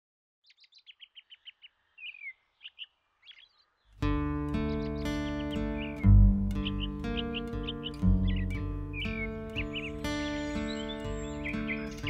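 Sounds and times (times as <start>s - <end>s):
birds chirping: 0.4s - 12.0s
music with sustained chord: 4.0s - 12.0s.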